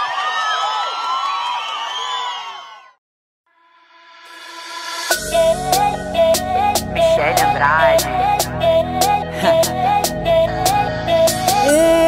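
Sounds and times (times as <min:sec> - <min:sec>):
crowd cheering and screaming: 0:00.0 - 0:03.0.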